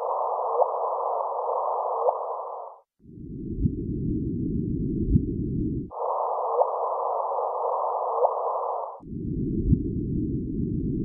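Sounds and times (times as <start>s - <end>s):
filtered hiss: 0.0s - 2.8s, 5.9s - 9.0s
steady hum: 0.0s - 11.0s.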